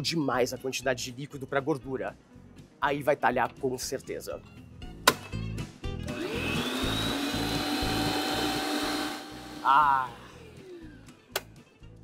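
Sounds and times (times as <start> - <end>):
stand mixer motor running: 6.1 - 11.0.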